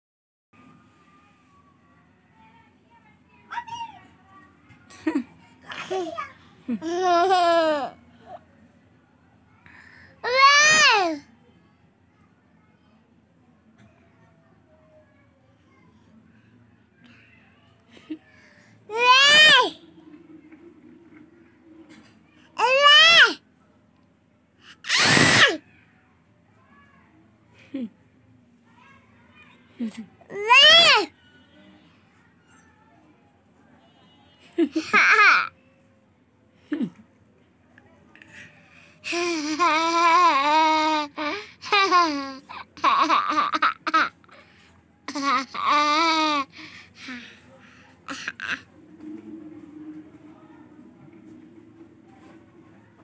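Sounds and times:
toddler shrieking: 18.9s - 19.7s, 22.6s - 23.4s, 24.8s - 25.6s.

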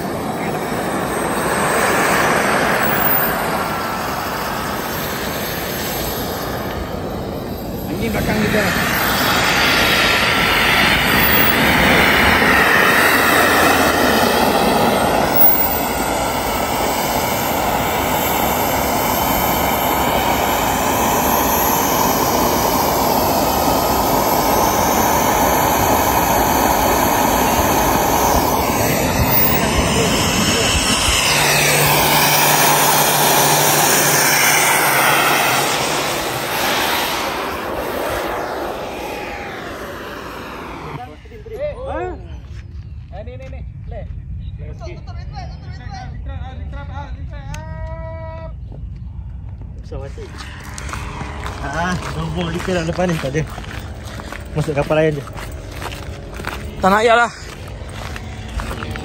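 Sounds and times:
model jet engine blast and whine: 0.0s - 43.0s, 48.5s - 59.0s.

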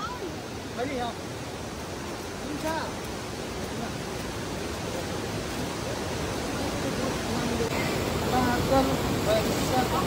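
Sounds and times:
river rushing over rocks: 0.0s - 10.0s.

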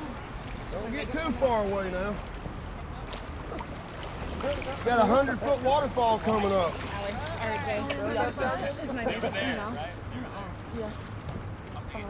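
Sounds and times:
water lapping and splashing: 0.0s - 12.0s.

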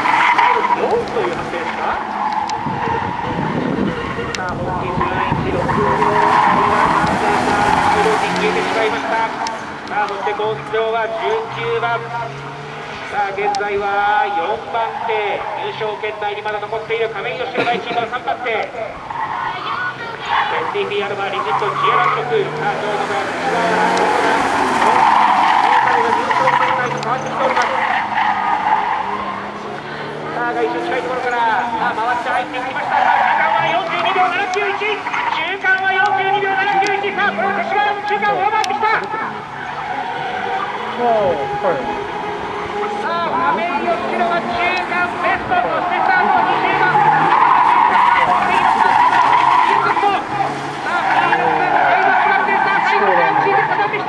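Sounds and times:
announcer's voice: 0.0s - 54.0s
car engine working hard: 0.0s - 54.0s
tyres squealing: 0.0s - 54.0s.

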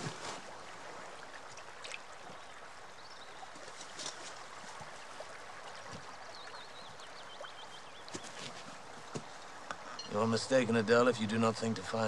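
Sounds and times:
river water flowing: 0.0s - 12.0s.

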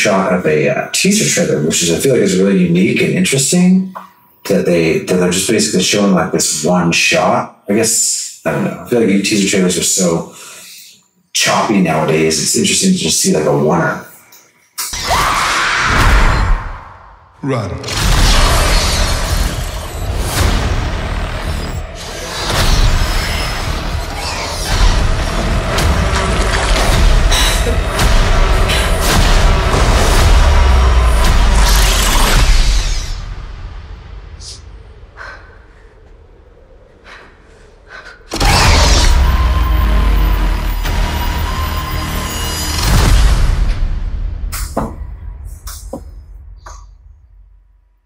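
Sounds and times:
dark film score: 0.0s - 48.0s
sharp hits: 17.8s - 35.2s, 38.3s - 47.4s
heavy low rumble: 18.4s - 42.4s.

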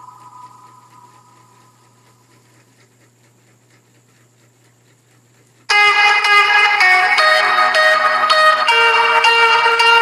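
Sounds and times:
low hum: 0.0s - 4.5s
steady hiss: 0.0s - 9.1s.

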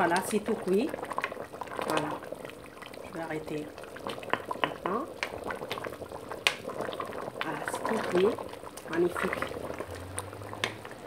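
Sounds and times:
stew bubbling in a pot: 0.0s - 11.0s.

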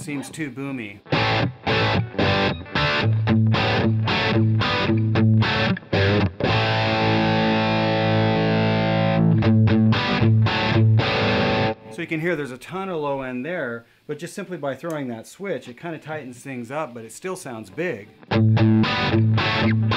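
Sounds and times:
distorted electric guitar chords: 1.0s - 12.0s, 18.1s - 19.9s.

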